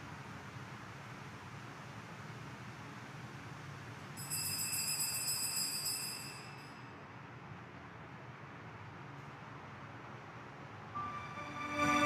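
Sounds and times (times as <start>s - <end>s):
high bright ringing tone: 4.2s - 6.9s, 11.0s - 12.0s
steady low hiss: 10.6s - 12.0s.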